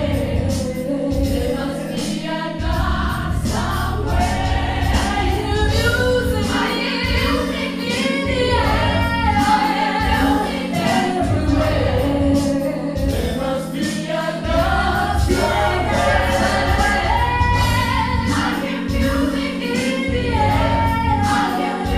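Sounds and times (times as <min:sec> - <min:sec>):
pulsing bass line: 0:00.0 - 0:01.5, 0:02.6 - 0:07.5, 0:08.3 - 0:10.4, 0:11.2 - 0:13.3, 0:14.4 - 0:19.3, 0:20.1 - 0:21.9
gospel choir singing: 0:00.0 - 0:21.9.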